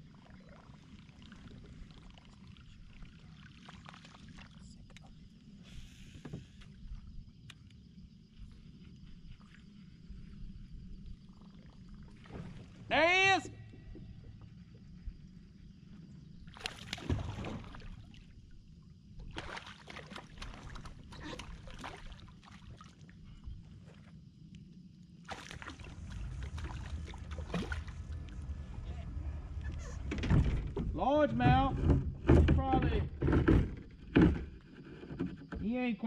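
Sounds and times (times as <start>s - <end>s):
fish splashing at water surface: 16.5s - 18.2s, 25.2s - 28.6s
low steady rumble: 25.5s - 33.2s.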